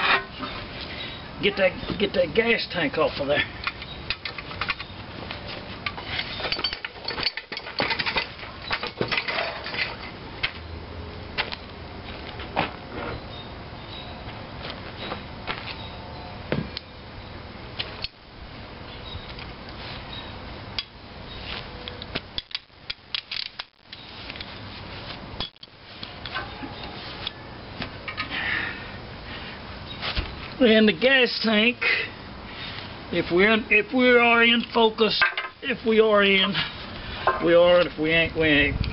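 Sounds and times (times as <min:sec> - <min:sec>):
metal tools clinking on engine parts: 0:05.9 - 0:10.2.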